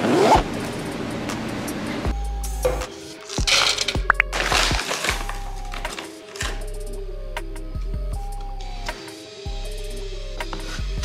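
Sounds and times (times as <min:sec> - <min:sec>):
bag handling noise: 0:02.7 - 0:06.7.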